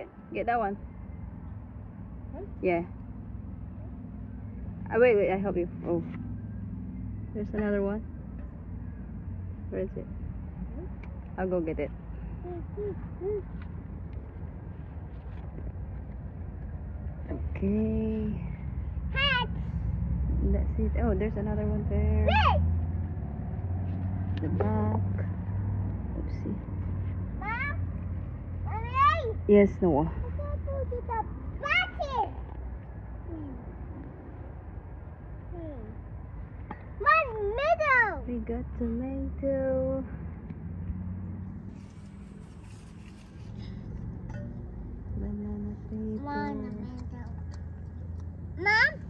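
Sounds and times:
low mechanical hum: 38.2 - 49.0
person speaking: 45.2 - 47.4.

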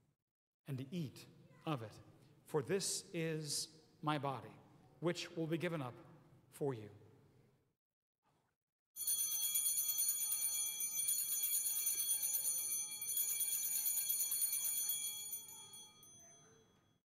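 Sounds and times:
altar bells jingling: 9.0 - 16.9.

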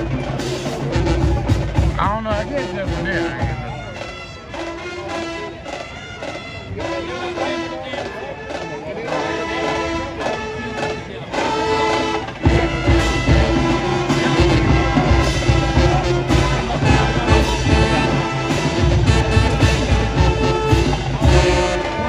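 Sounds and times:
heavy drums: 0.0 - 22.0
marching band playing: 0.0 - 22.0.

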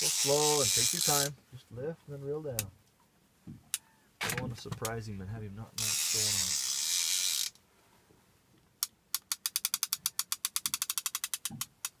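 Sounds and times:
fishing reel clicking: 0.0 - 1.3, 5.8 - 7.6, 8.8 - 12.0.

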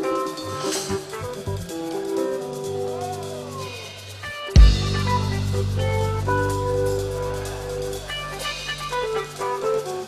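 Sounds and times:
keyboard playing held chords: 0.0 - 10.0
electric bass notes: 4.6 - 10.0.

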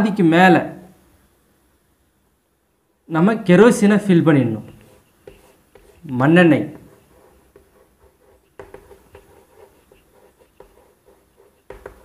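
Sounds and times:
chalk tapping and scraping: 4.6 - 12.0.

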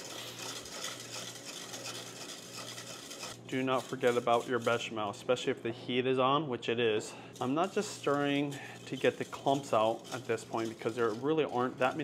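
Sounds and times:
whisk swishing in saucepan: 0.0 - 5.4, 7.0 - 12.0.

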